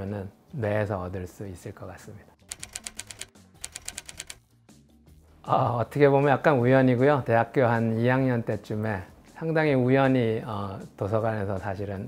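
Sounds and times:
typewriter key clicks: 2.5s - 4.4s.

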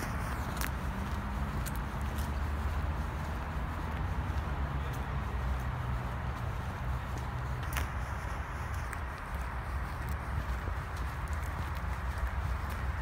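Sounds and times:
footsteps on a path: 0.0s - 13.0s
wind rumble on microphone: 0.0s - 13.0s.

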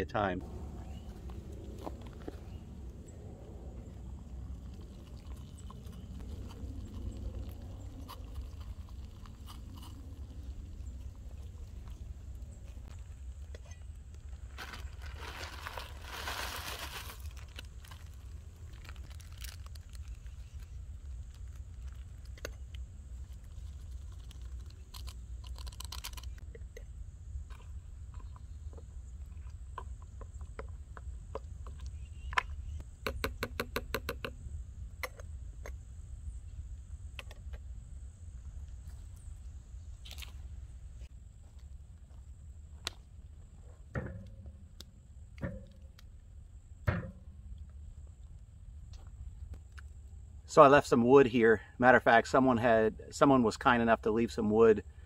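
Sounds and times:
low rumble: 0.4s - 24.8s
crunching and rustling: 0.8s - 26.5s, 38.6s - 46.2s.

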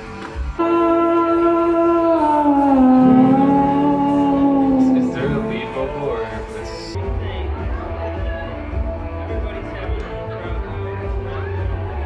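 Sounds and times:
sustained electric guitar note: 2.7s - 6.6s.

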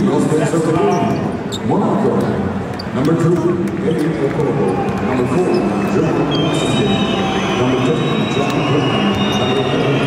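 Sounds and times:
crowd chatter: 0.0s - 10.0s
basketballs bouncing on court: 2.2s - 6.2s, 8.4s - 10.0s.

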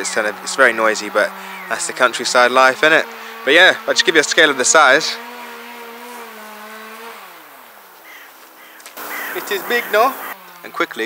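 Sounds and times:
hedge cutter engine running: 0.0s - 7.8s, 9.0s - 11.0s.

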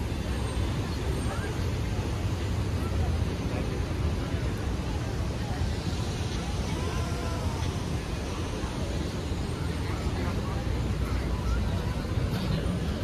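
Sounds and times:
city traffic rumble: 0.0s - 13.0s
faint voices of people: 0.0s - 13.0s.

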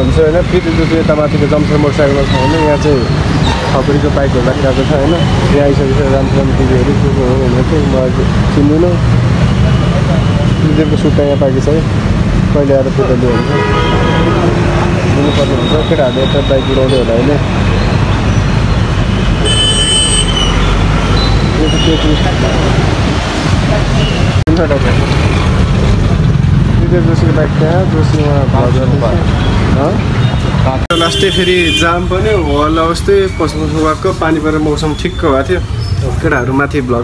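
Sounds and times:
man talking: 0.0s - 3.1s, 3.7s - 9.1s, 10.0s - 13.7s, 15.0s - 17.5s, 26.7s - 30.0s, 30.6s - 37.0s
motorbikes and cars rumbling: 0.0s - 37.0s
street traffic noise: 0.0s - 37.0s.

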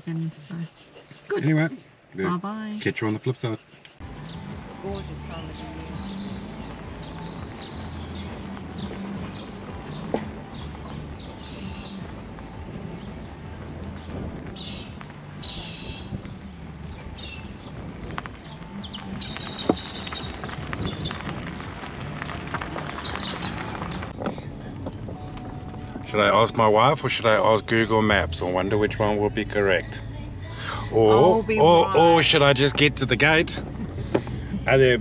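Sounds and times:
birds chirping: 0.0s - 35.0s
car driving on unsealed road: 2.9s - 35.0s
small crackling clicks: 18.1s - 24.4s.

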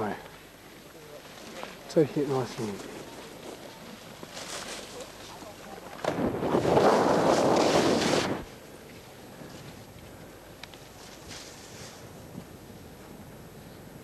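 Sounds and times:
faint outdoor background: 0.0s - 14.0s
skis scraping across snow: 1.2s - 9.9s, 10.9s - 12.3s.

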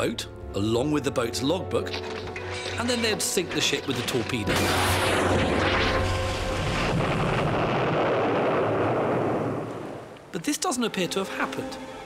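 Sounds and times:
explosion rumble: 4.5s - 10.1s.

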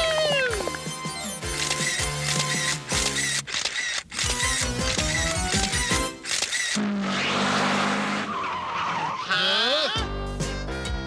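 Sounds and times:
music: 0.0s - 3.4s, 4.2s - 6.3s, 9.9s - 11.0s.

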